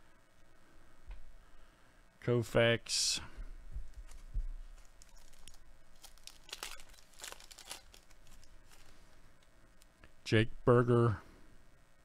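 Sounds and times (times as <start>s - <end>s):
wrapper being torn and crinkled: 4.0s - 9.0s.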